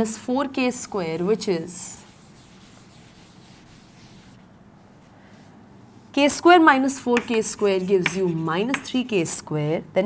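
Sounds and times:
low room hiss: 0:00.0 - 0:10.0.

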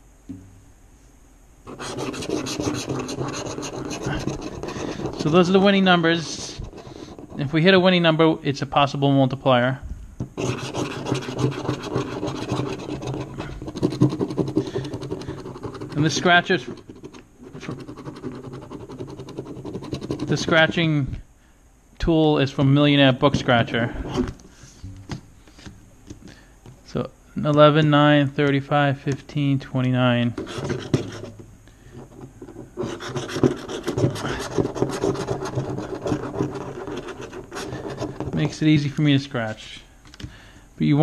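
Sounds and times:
plastic tool scratching lottery ticket: 0:01.7 - 0:07.6, 0:10.4 - 0:20.8, 0:30.3 - 0:31.4, 0:32.0 - 0:38.6.

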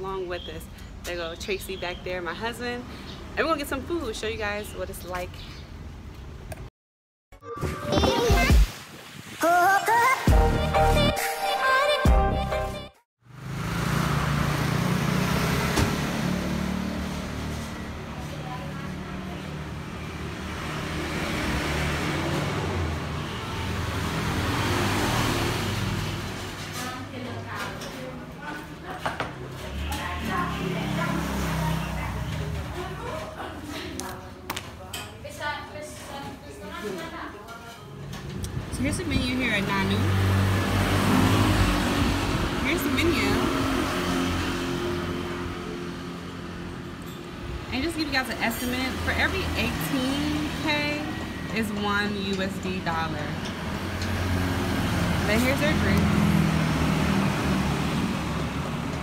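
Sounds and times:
passing vehicle engine rumble: 0:13.3 - 0:28.0, 0:29.4 - 0:33.0, 0:38.3 - 0:59.0.

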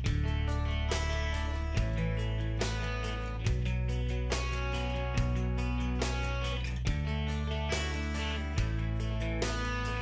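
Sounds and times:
guitar-led background music: 0:00.0 - 0:10.0.

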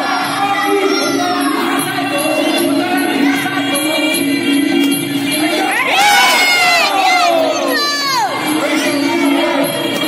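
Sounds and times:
background music: 0:00.0 - 0:10.0
crowd shouting and cheering: 0:00.0 - 0:10.0.

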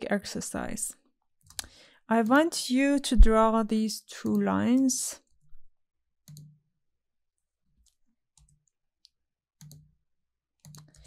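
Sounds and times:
computer mouse clicks: 0:01.4 - 0:02.4, 0:06.3 - 0:06.6, 0:07.8 - 0:09.9, 0:10.6 - 0:11.0.

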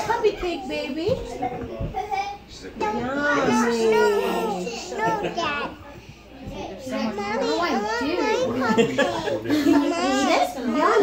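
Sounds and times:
young child talking: 0:02.1 - 0:10.4.

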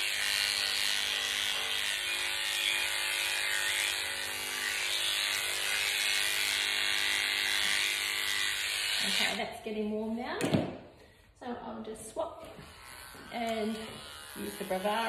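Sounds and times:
electric hair clippers running: 0:00.0 - 0:09.5, 0:12.4 - 0:15.0.

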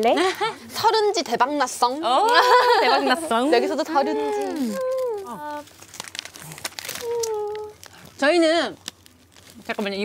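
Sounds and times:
plastic wrapping crinkling: 0:03.4 - 0:10.0.

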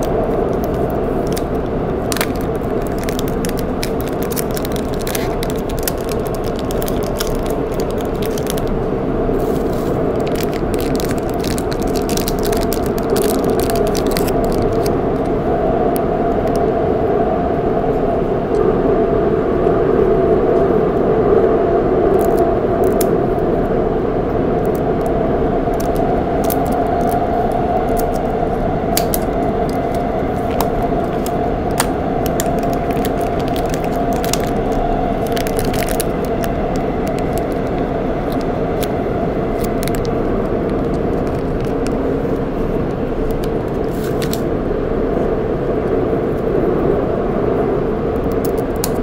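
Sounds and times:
plastic packaging crinkling: 0:00.0 - 0:15.4, 0:22.1 - 0:23.2, 0:24.6 - 0:44.5, 0:48.2 - 0:49.0
metro train rumble inside carriage: 0:00.0 - 0:49.0.

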